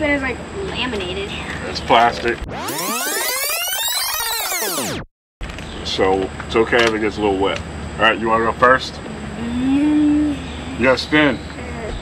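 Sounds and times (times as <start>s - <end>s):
synthesized rising and falling sweep: 2.5s - 5.1s.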